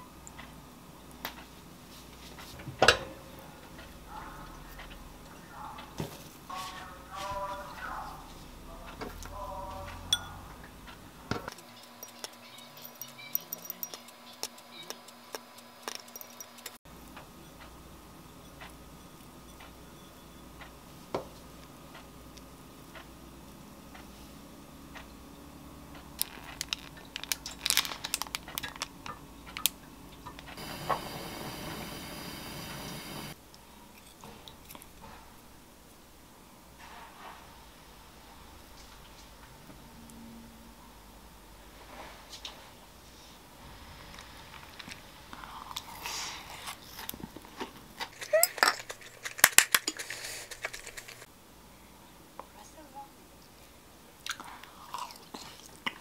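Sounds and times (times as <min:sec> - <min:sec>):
steady high hiss: 0:30.5 - 0:33.4.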